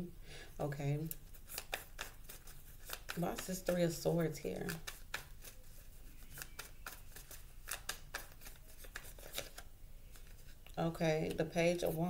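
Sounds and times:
cards being shuffled: 1.0 - 10.6.

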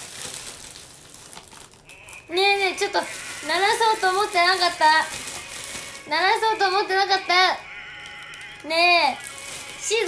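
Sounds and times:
high-pitched voice: 6.1 - 10.0.

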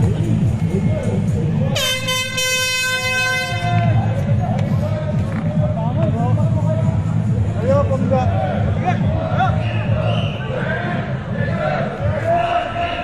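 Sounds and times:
crowd voices: 0.0 - 13.0
music: 0.0 - 13.0
air horn blast: 1.8 - 3.9.

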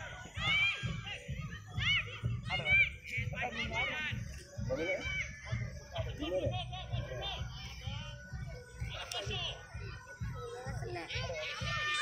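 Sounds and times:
distant children and adults shouting: 0.0 - 12.0.

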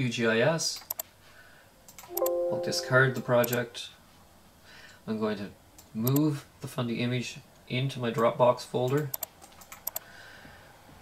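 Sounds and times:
computer mouse clicks: 0.8 - 1.1, 8.9 - 10.1.

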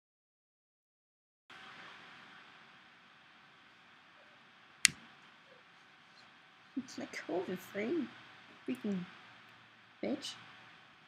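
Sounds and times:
room hiss: 1.5 - 11.0.

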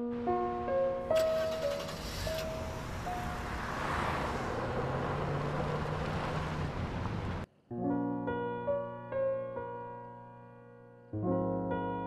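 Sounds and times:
road noise: 0.0 - 7.5
car engine running: 1.2 - 7.4.

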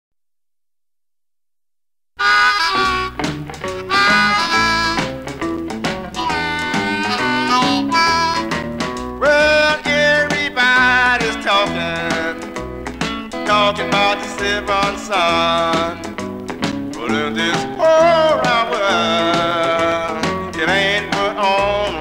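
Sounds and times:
harmonica wavering lead notes: 2.2 - 9.7
blues band playing: 2.2 - 22.0.

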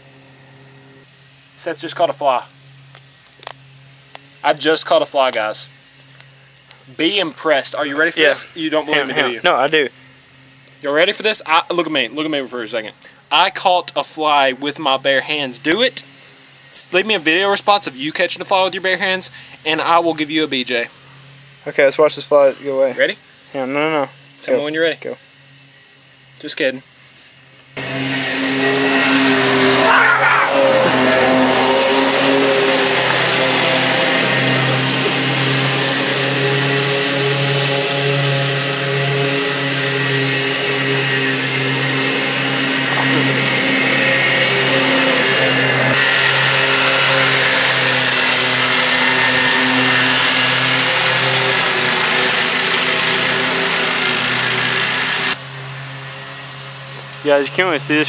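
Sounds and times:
riding lawn mower engine: 0.0 - 58.0.

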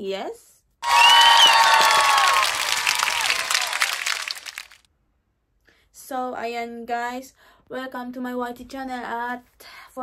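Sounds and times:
crowd applause and cheering: 0.8 - 4.8.

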